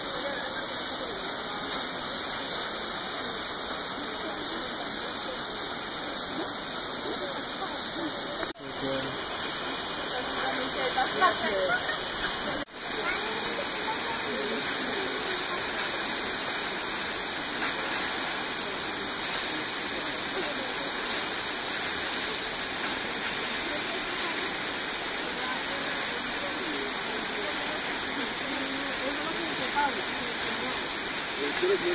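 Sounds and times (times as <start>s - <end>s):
waterfall rushing onto rocks: 0.0s - 31.9s.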